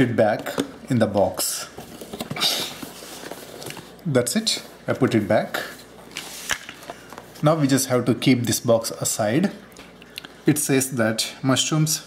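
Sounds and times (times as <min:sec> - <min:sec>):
plastic rustling scrape: 0:01.8 - 0:04.6.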